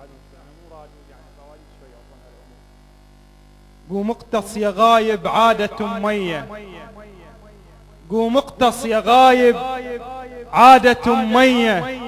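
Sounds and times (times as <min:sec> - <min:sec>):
electrical mains hum: 0:00.0 - 0:12.0
man chanting loudly: 0:03.9 - 0:07.4, 0:08.0 - 0:12.0.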